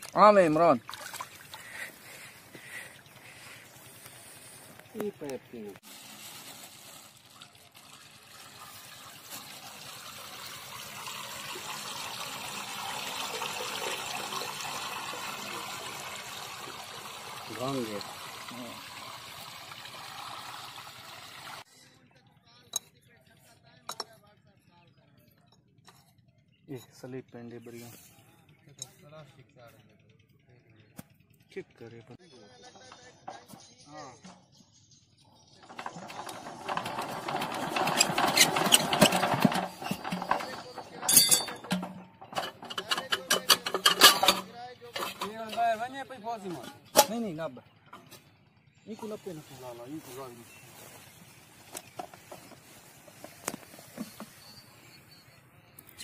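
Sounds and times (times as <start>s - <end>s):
water pouring into a pipe: 0.0s - 1.9s, 5.0s - 21.6s, 35.6s - 45.8s
diesel engine cranking clatter: 35.4s - 48.9s
metal clank: 35.6s - 47.4s.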